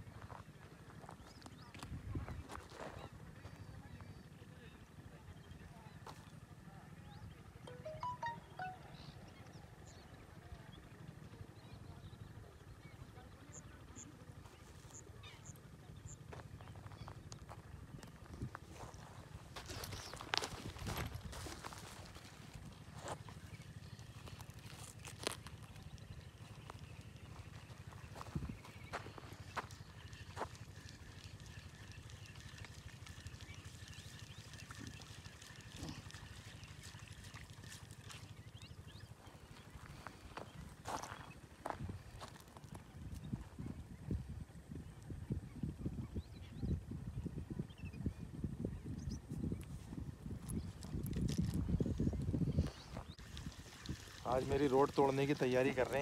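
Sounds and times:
wind rumble on microphone: 0.9s - 3.8s, 16.2s - 23.4s, 25.7s - 31.2s, 39.8s - 56.0s
bird chirps: 7.7s - 9.4s.

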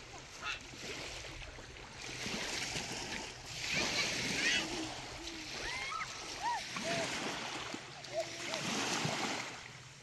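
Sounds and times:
waves washing on shore: 0.0s - 10.0s.

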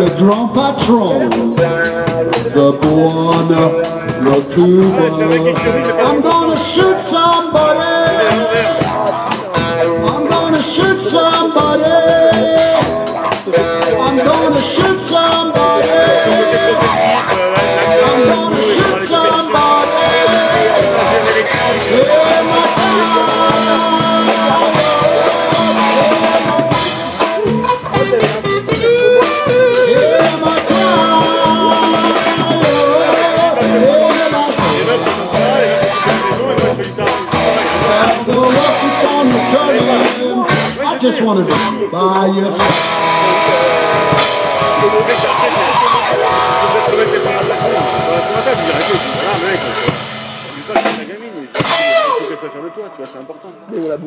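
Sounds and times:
upright double bass: 0.0s - 51.7s
drum kit: 0.0s - 54.0s
electric guitar with wah: 0.0s - 54.0s.

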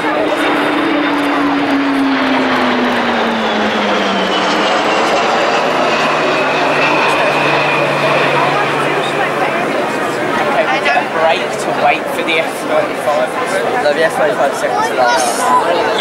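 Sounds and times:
jet passing low overhead: 0.0s - 16.0s.

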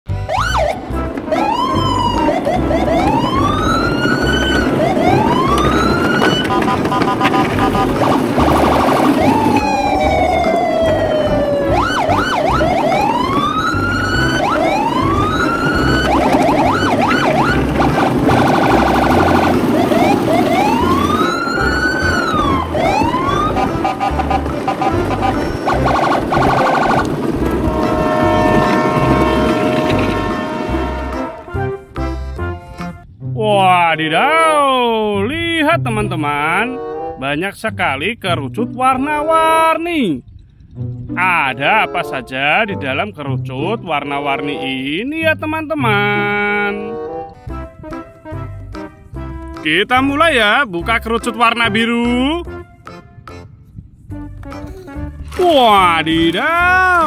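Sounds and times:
electronic siren whooping: 0.2s - 31.4s
fast electronic warbling: 1.4s - 27.1s.

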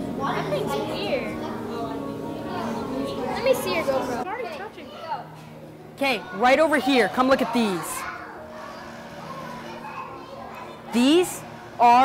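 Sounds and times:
distant chatter of children: 0.0s - 12.0s.

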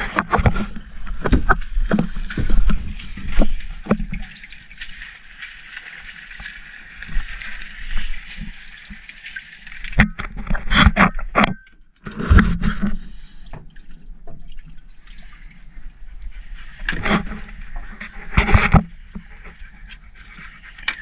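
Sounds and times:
water splashing and trickling: 0.0s - 21.0s.

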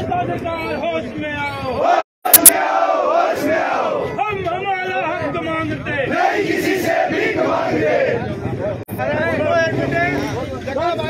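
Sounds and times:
crowd of men shouting: 1.8s - 4.2s, 6.0s - 8.3s.

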